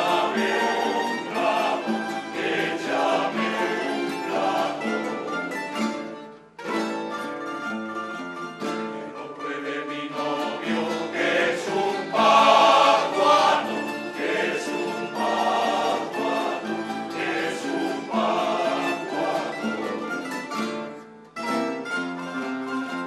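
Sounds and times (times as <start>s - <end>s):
male choir singing: 0.0s - 5.7s, 9.0s - 20.6s
plucked string instruments: 0.0s - 23.0s.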